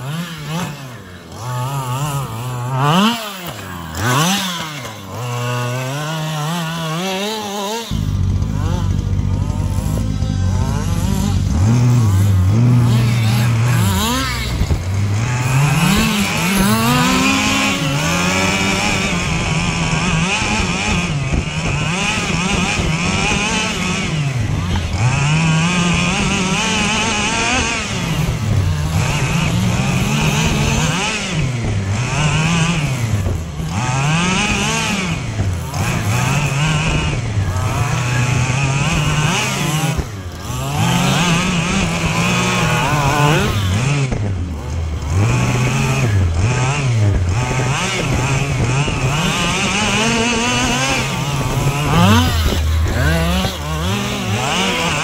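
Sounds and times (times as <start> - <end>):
small two-stroke engine revving: 0.0 - 55.0.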